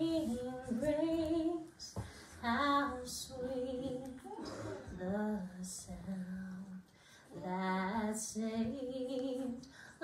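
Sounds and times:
woman singing a hymn: 0.0 - 10.0.

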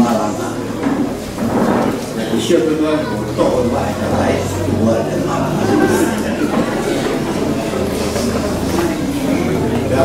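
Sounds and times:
man speaking over public address: 0.0 - 0.9, 2.1 - 8.3.

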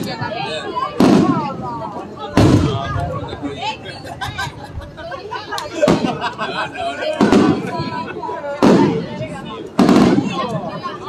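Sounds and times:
firework shells booming: 1.0 - 3.2, 5.8 - 6.2, 7.2 - 10.6.

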